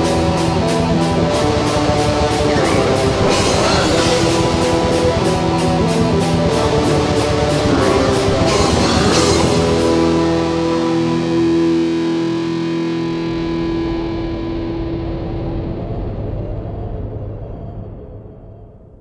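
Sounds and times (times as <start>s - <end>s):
drums with cymbal hits: 0.0s - 10.5s
distorted guitars: 0.0s - 18.3s.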